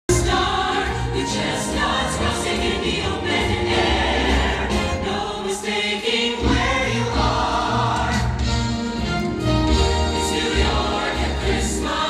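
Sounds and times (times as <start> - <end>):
orchestra playing: 0.1 - 5.5, 6.4 - 12.0
choir singing: 0.1 - 8.8, 9.8 - 12.0.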